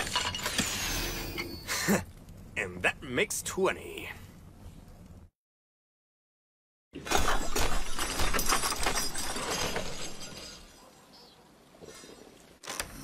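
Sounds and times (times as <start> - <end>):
clattering shattering crash: 0.0 - 0.8, 7.0 - 10.9.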